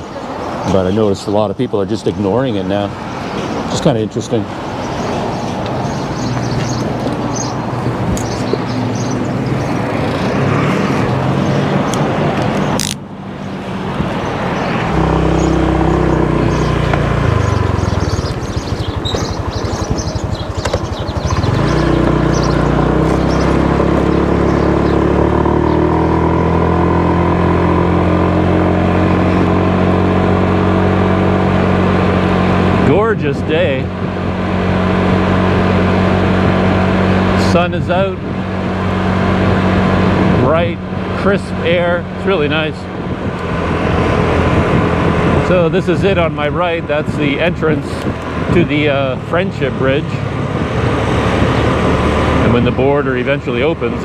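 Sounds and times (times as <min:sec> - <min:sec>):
road noise: 0:00.0 - 0:54.0
motor scooter engine: 0:04.5 - 0:54.0
wind noise: 0:31.8 - 0:54.0.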